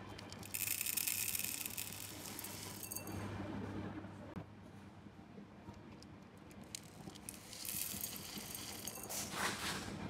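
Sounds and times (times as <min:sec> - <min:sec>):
granules rattling into glass: 0:00.3 - 0:03.1, 0:06.8 - 0:09.2.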